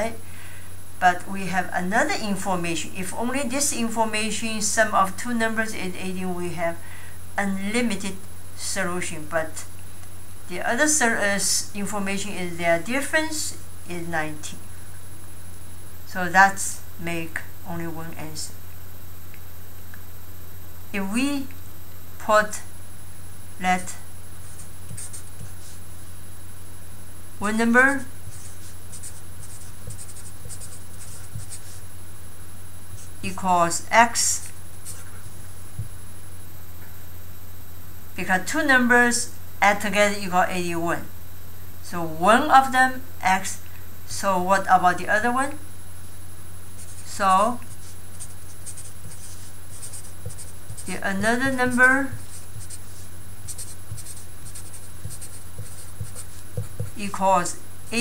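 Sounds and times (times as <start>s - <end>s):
steady low hum: 0.0s - 58.0s
marker scratching on paper: 24.4s - 25.8s, 28.3s - 31.8s, 34.4s - 35.3s, 46.8s - 57.1s.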